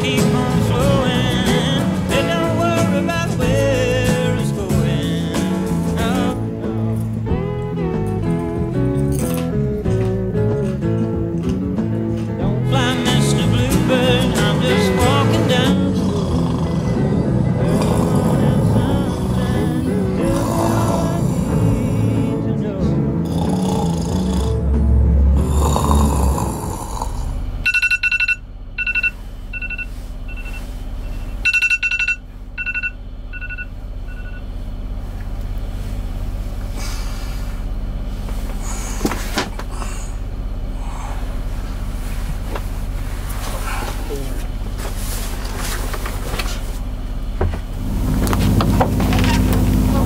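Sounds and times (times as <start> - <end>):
background music: 0.0 - 27.0
low machinery hum: 0.0 - 50.0
phone alarm beeping: 27.6 - 34.5.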